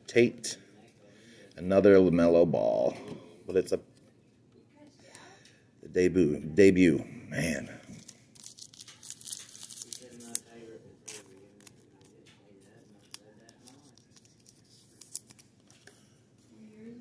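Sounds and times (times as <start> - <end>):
thin plastic crinkling and clicking: 7.9 - 16.0.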